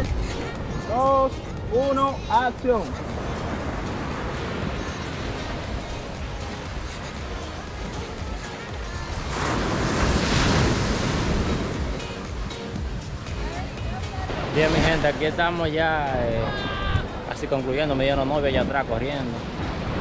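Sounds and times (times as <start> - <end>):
background music: 0.0 - 20.0
ocean surf on a sandy beach: 0.0 - 20.0.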